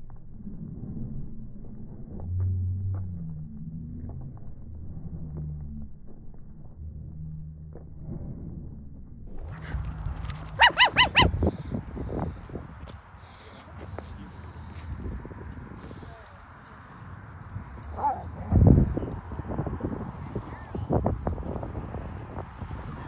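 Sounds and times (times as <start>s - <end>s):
dog barking high-pitched: 10.5s - 11.3s.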